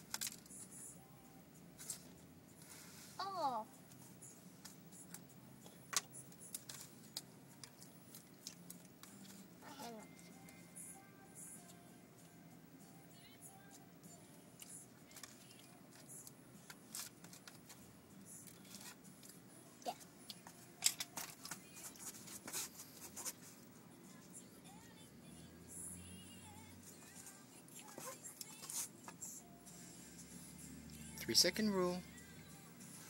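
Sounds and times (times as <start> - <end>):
faint background music: 0.0 - 33.0
crackers and wrappers rustling: 6.4 - 10.3, 18.4 - 19.4.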